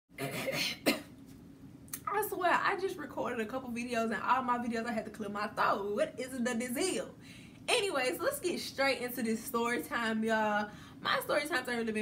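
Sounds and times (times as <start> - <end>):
woman clearing her throat: 0.2 - 1.1.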